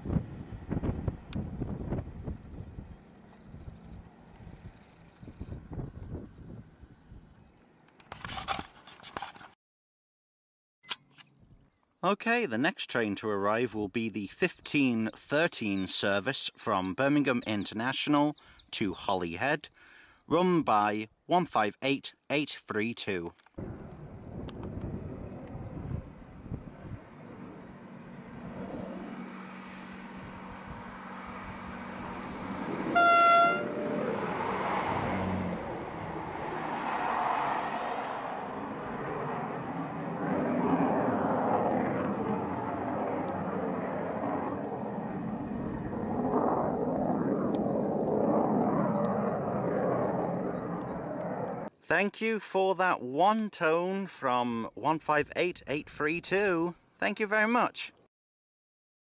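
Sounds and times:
diesel train rumbling past: 0:23.6 - 0:41.2
train horn note: 0:32.9 - 0:33.9.

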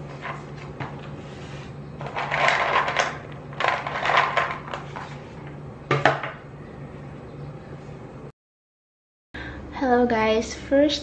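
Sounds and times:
clay charms rattling in plastic bin: 0:02.0 - 0:04.8.

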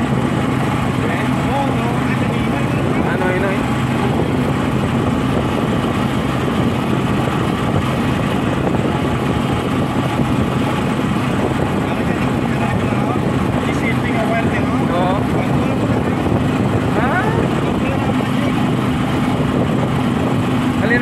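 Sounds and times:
vehicle engine and tyre noise: 0:00.0 - 0:21.0.

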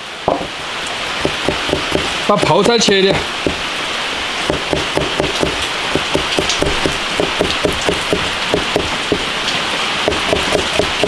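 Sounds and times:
cleaver knocking on cutting board: 0:00.3 - 0:00.5, 0:01.2 - 0:03.6, 0:04.5 - 0:09.3, 0:10.1 - 0:11.0.

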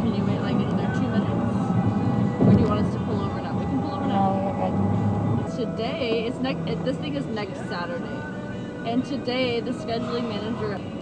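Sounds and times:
car cabin rumble: 0:00.0 - 0:10.8
passengers talking: 0:00.0 - 0:11.0.

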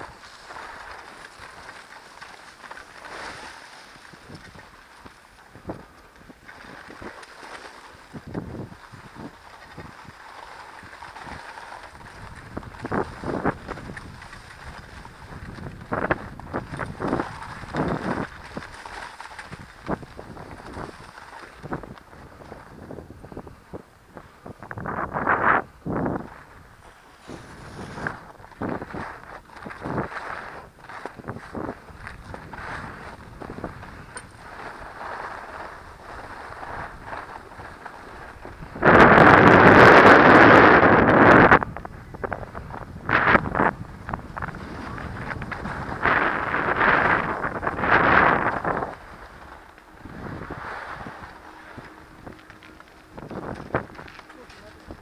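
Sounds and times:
skis scraping over snow: 0:00.0 - 0:55.0
wind rushing over microphone: 0:08.1 - 0:10.2, 0:10.8 - 0:55.0.

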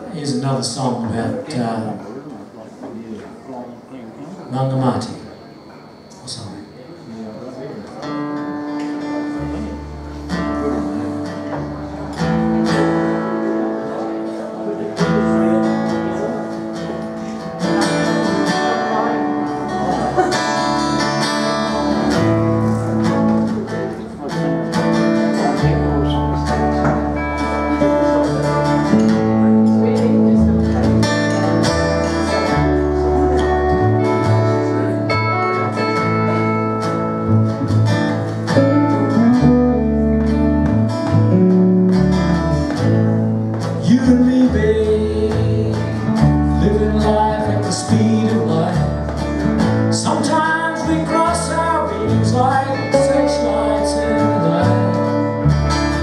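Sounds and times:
acoustic guitar: 0:00.0 - 0:03.4, 0:04.2 - 0:56.0
electric guitar: 0:07.4 - 0:56.0
double bass: 0:09.1 - 0:56.0.

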